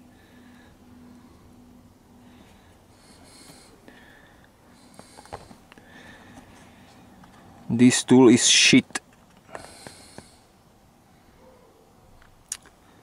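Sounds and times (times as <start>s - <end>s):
faint breathing: 0.0s - 7.6s, 9.4s - 11.6s.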